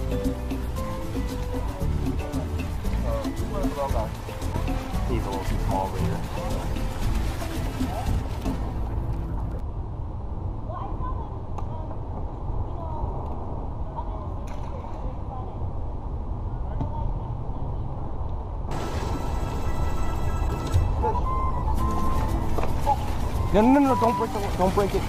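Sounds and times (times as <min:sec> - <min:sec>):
faint music: 0:00.0 - 0:09.7, 0:18.7 - 0:25.0
wind rumble on microphone: 0:06.1 - 0:18.7.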